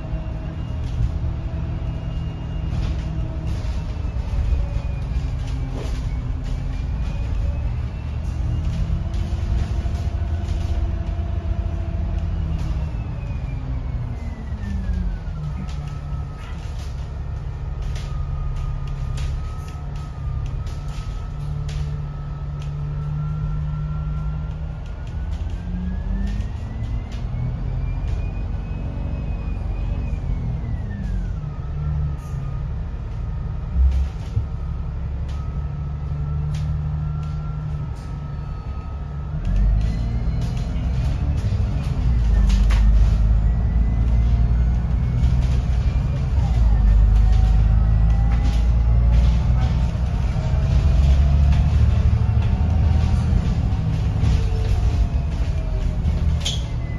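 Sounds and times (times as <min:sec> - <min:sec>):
bus body rattles and clicks: 0:00.0 - 0:56.9
bus diesel engine whine: 0:00.0 - 0:56.9.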